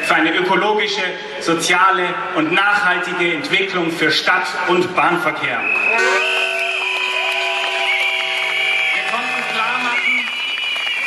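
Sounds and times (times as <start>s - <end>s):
crowd noise: 0.0s - 11.0s
whistles and horns blowing: 5.6s - 8.9s, 9.8s - 11.0s.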